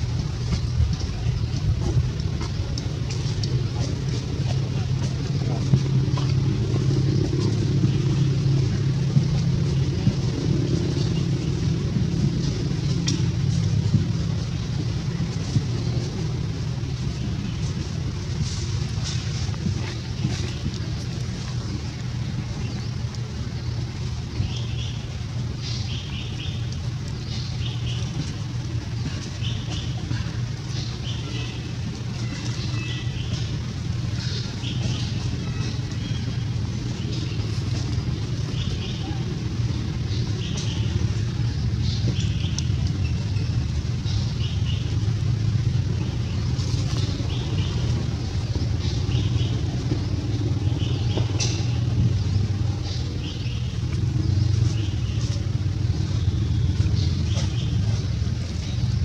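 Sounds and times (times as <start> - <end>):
low engine rumble: 0.0 - 59.0.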